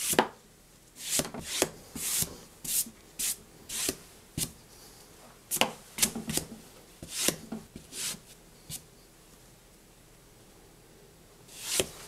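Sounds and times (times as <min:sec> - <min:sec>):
brush sweeping across paper: 0:01.0 - 0:04.9, 0:11.5 - 0:12.0.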